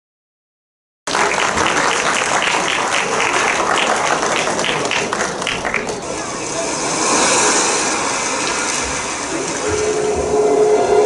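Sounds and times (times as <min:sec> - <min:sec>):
audience applause: 0:01.1 - 0:10.0.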